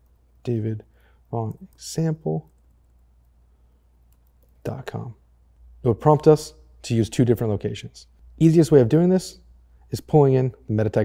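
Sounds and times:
faint keyboard typing: 0:00.0 - 0:05.7
man speaking: 0:00.4 - 0:02.5, 0:04.6 - 0:05.2, 0:05.8 - 0:11.0.

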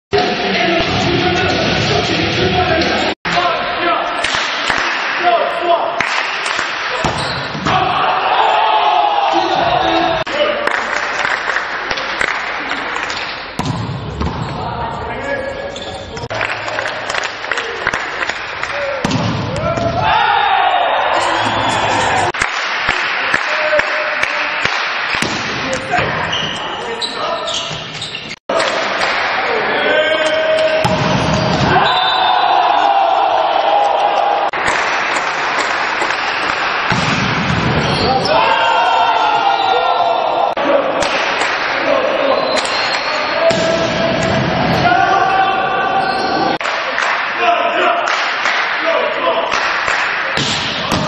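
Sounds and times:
crowd noise: 0:00.1 - 0:51.0
volleyball hits: 0:06.0 - 0:07.9, 0:13.1 - 0:14.6, 0:17.9 - 0:20.1, 0:24.2 - 0:26.3, 0:30.6 - 0:31.8, 0:34.5 - 0:38.1, 0:43.5 - 0:44.8, 0:49.5 - 0:51.0
voices shouting: 0:06.9 - 0:10.3, 0:19.6 - 0:22.4, 0:29.4 - 0:34.6, 0:38.0 - 0:41.2.

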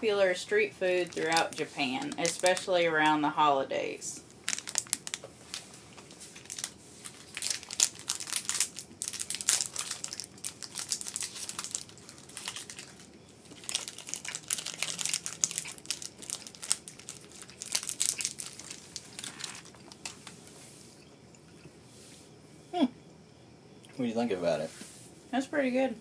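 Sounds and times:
snack wrappers crinkling: 0:00.6 - 0:03.2, 0:04.2 - 0:20.5.

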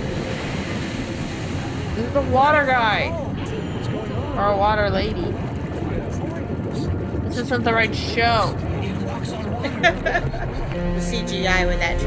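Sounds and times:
wind and surf rushing: 0:00.0 - 0:10.8.

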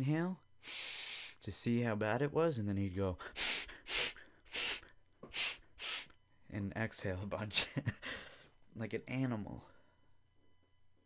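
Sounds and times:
man puffing forceful breaths: 0:03.3 - 0:06.2.

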